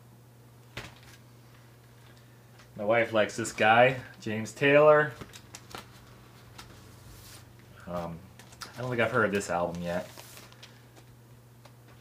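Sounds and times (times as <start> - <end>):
low steady hum: 0.0 - 12.0
cardboard record jacket rustling: 5.0 - 8.2, 8.8 - 11.1.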